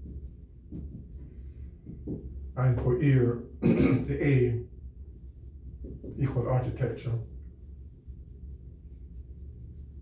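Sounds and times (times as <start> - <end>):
marker scratching on whiteboard: 0.0 - 3.2, 5.2 - 10.0
low steady hum: 0.0 - 10.0.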